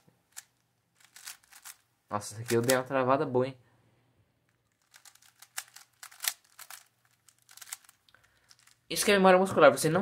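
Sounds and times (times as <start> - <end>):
speed cube turns clicking: 0.3 - 1.8, 4.7 - 8.8.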